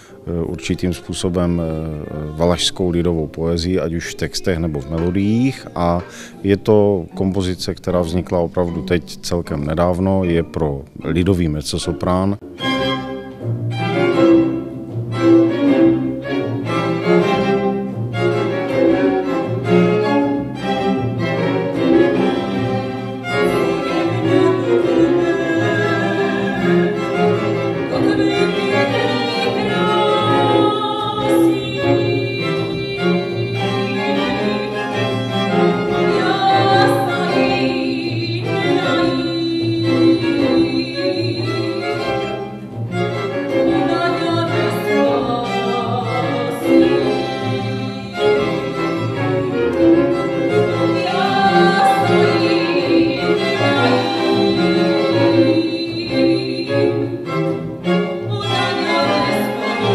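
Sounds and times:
string orchestra playing: 0:00.0 - 0:59.9
woman singing: 0:23.4 - 0:27.2, 0:27.8 - 0:35.2, 0:35.8 - 0:42.4, 0:43.6 - 0:48.8, 0:50.7 - 0:57.3, 0:58.2 - 0:59.9.

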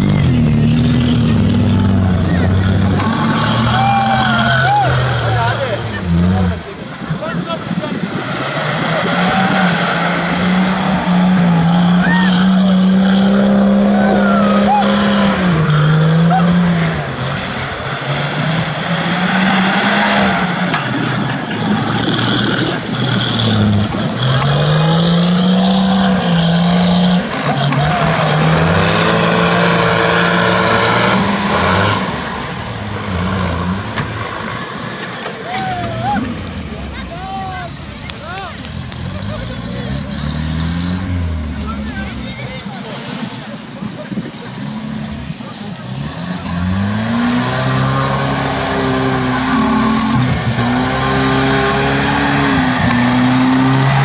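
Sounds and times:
engine working hard: 0:00.0 - 0:54.0.

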